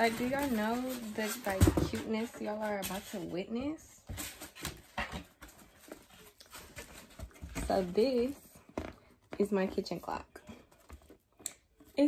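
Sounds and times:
cardboard knocks and rustles: 0.0 - 9.9.

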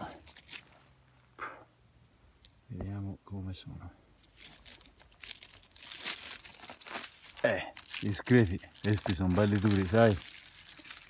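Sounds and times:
dry leaves rustling and crinkling: 0.0 - 1.2, 4.2 - 11.0.

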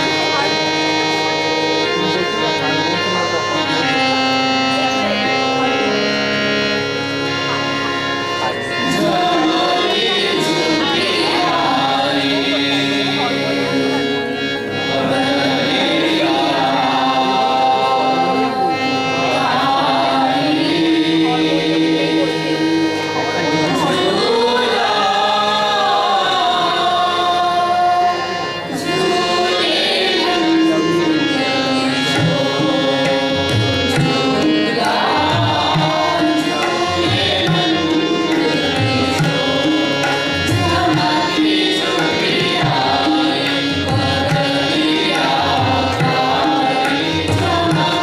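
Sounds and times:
harmonium melody: 0.0 - 48.0
instrumental drone: 0.0 - 48.0
group singing a long note: 3.7 - 48.0.

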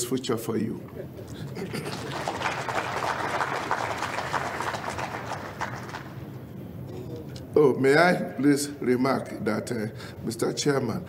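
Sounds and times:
laughter: 0.9 - 2.8
audience applauding: 1.3 - 6.2.

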